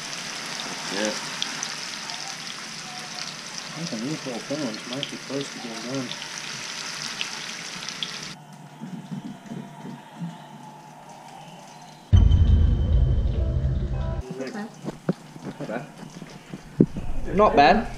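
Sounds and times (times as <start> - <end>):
fish sizzling in a pan: 0.0 - 8.4
loud low rumble: 12.1 - 14.2.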